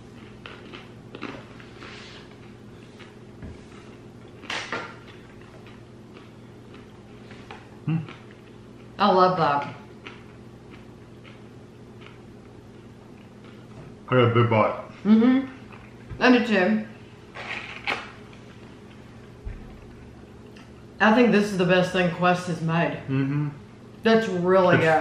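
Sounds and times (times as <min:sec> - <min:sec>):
crunchy chewing: 0:00.0 - 0:09.0, 0:09.8 - 0:13.8
low room hum: 0:00.0 - 0:25.0.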